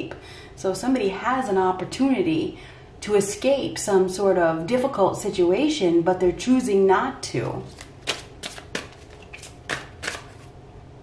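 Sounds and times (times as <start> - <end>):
cards being shuffled: 7.5 - 10.5
sharp card clicks: 7.8 - 10.5.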